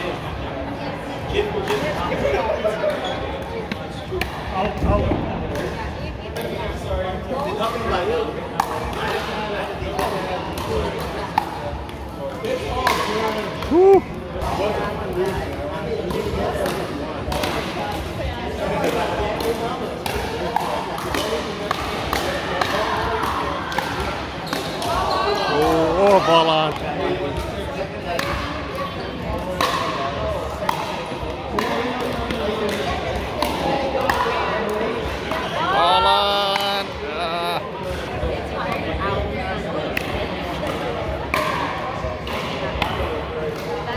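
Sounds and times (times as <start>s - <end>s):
players' voices: 0.0s - 43.9s.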